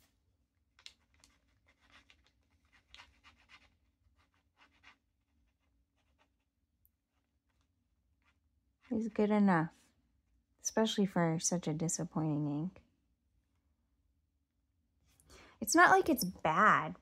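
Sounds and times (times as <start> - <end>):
pen nib scratching on paper: 1.2 - 6.5.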